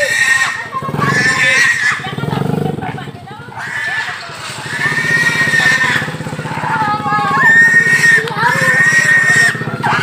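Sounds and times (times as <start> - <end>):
wild pig squealing: 0.0 - 2.8, 3.4 - 10.0.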